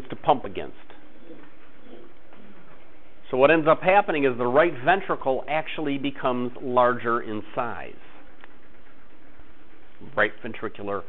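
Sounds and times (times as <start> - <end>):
recording hiss: 3.2 - 8.5.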